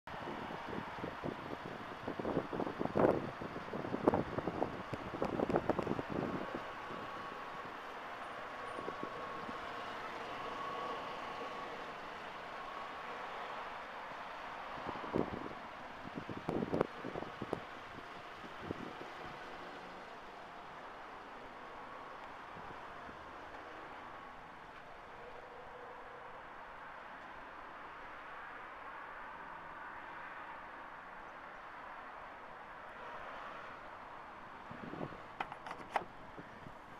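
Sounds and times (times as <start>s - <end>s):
outdoor background noise: 0.0s - 36.9s.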